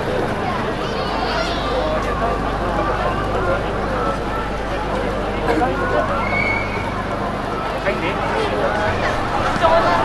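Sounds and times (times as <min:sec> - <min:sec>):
crowd chatter: 0:00.0 - 0:10.0
short high squeal: 0:06.2 - 0:06.9.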